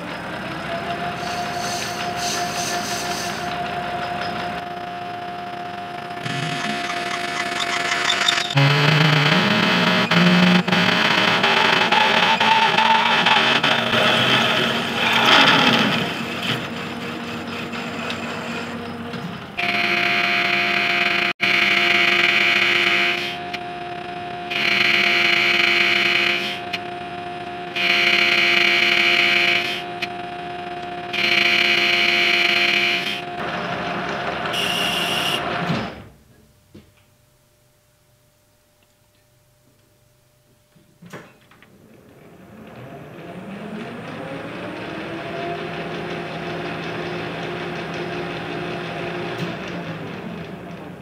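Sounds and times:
steady machine whine: 0.0s - 36.1s, 41.3s - 51.0s
lathe drilling metal: 0.4s - 35.7s
boring bar cutting metal: 6.2s - 19.0s.

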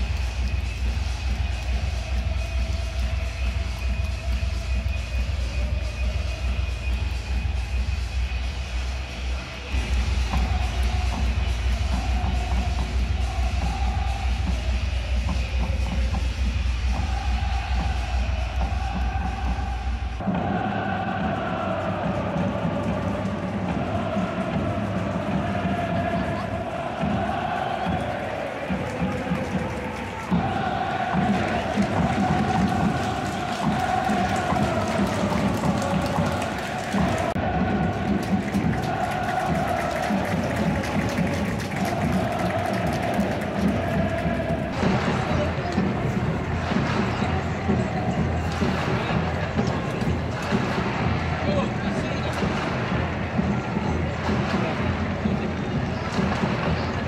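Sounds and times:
crowd chanting over a beat: 0.0s - 57.0s.

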